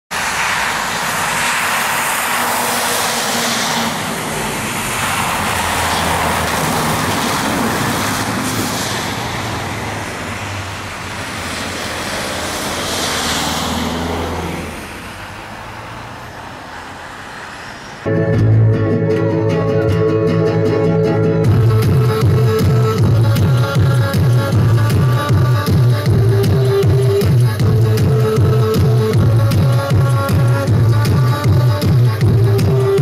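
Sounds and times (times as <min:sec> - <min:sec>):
tyres hissing on wet road: 0:00.1 - 0:18.1, 0:21.7 - 0:33.0
vehicles passing on wet road: 0:00.1 - 0:19.4, 0:20.5 - 0:33.0.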